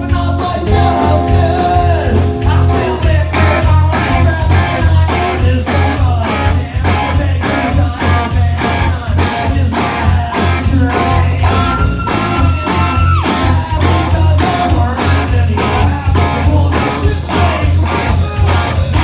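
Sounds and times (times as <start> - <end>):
electric guitar: 0.0 - 19.0
live rock band playing: 0.0 - 19.0.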